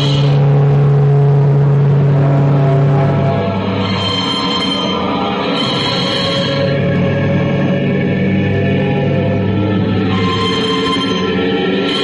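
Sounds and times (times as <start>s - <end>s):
electronic noise music drone: 0.0s - 12.0s
high held tones: 0.0s - 12.0s.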